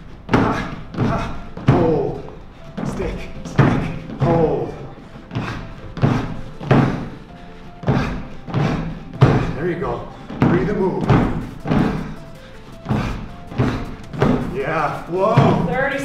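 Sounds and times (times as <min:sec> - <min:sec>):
background music: 0:00.0 - 0:16.0
feet thudding on step platforms: 0:00.0 - 0:16.0
short voiced breaths: 0:11.4 - 0:14.4.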